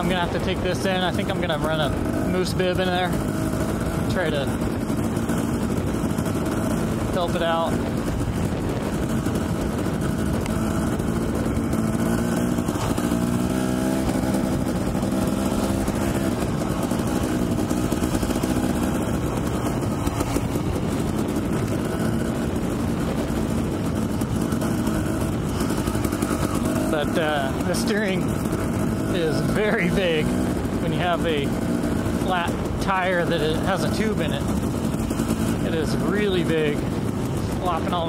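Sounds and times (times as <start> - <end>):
dirt bike engine running: 0.0 - 38.0.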